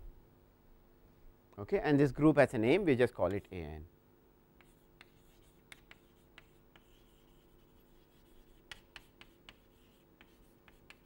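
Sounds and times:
chalk tapping and scratching: 3.2 - 3.6, 4.6 - 11.0.

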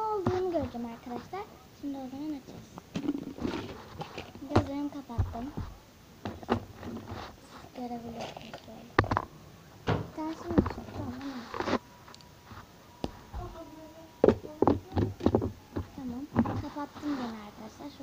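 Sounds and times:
plastic eggs clattering in bowl: 2.9 - 4.9.

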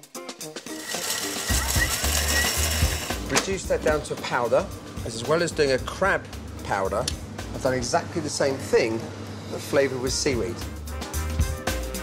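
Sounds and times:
background music: 0.0 - 8.4, 10.0 - 12.0
food processor grinding: 0.7 - 3.3.

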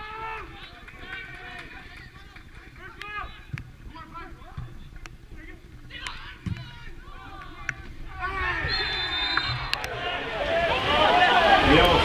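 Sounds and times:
footballers shouting: 5.9 - 12.0.

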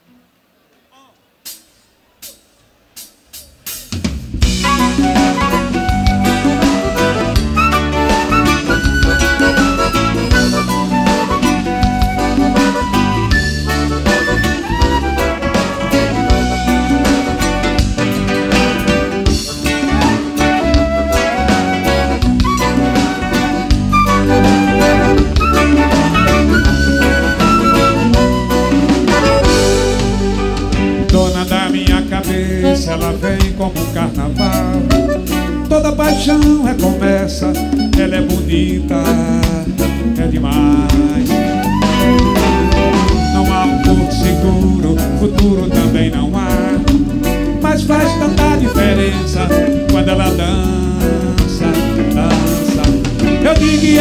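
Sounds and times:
band playing: 0.4 - 54.0
drum kit steady beat: 1.0 - 54.0
electric bass: 3.8 - 54.0.

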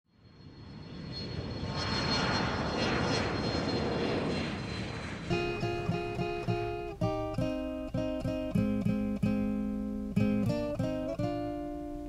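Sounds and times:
airplane engine with high whine: 0.1 - 10.2.

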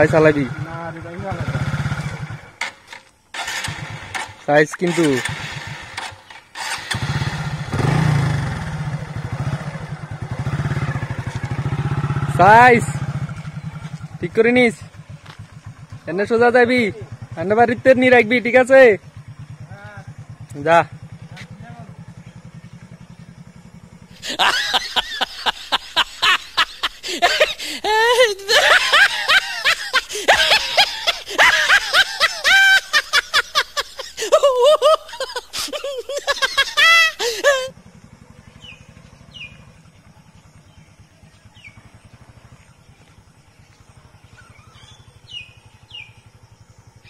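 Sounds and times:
motorcycle engine idling: 0.0 - 47.0
birds whistling: 38.3 - 46.4.

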